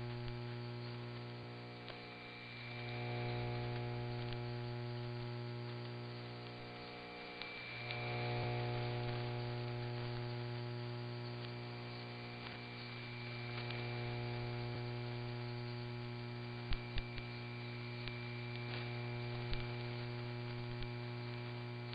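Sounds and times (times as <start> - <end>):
faint static clicks: 0.0 - 21.9
radio carrier hum: 0.0 - 21.9
radio hiss and static: 0.0 - 21.9.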